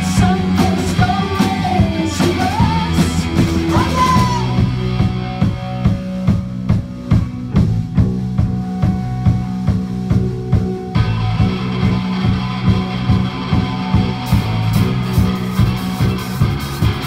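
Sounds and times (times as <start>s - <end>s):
bass guitar: 0.0s - 17.0s
drums: 0.0s - 17.0s
electric guitars: 0.0s - 17.0s.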